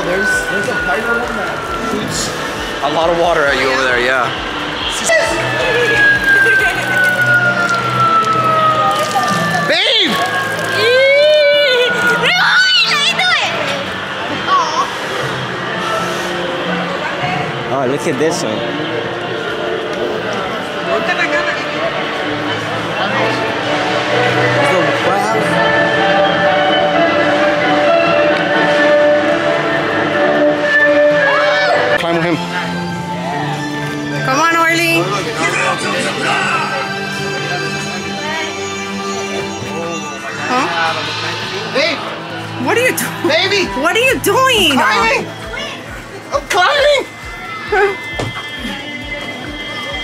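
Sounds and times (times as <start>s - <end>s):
fire engine siren tone falling: 0.0s - 14.1s
background music with held notes: 14.9s - 41.2s
music from small speaker: 43.9s - 50.0s.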